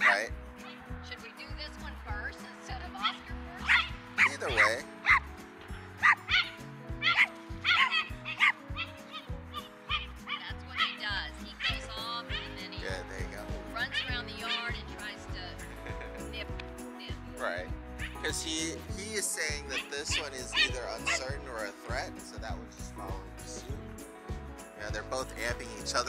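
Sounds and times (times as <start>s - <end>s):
dog barking sharply: 3.0s - 5.2s, 6.0s - 9.3s, 11.6s - 12.6s, 19.7s - 21.2s
dog whining: 6.3s - 11.0s.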